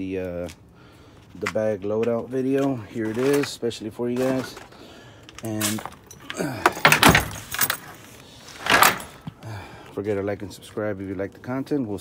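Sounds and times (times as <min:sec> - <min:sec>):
jangling and rustling handling noise: 0:01.2 - 0:09.5.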